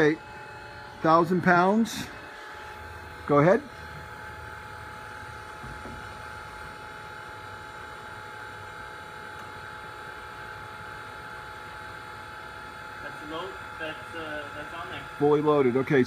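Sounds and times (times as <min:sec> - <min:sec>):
electric forklift humming: 0:00.0 - 0:16.0.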